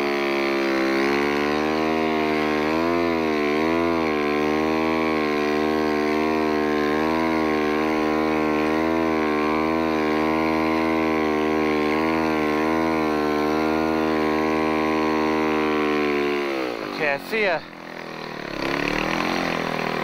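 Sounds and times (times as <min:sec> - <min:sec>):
snowbike engine running: 0:00.0 - 0:20.0.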